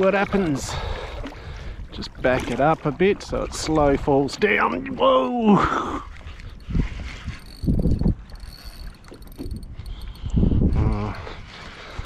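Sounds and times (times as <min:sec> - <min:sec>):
water sloshing against kayak hull: 0:00.0 - 0:12.0.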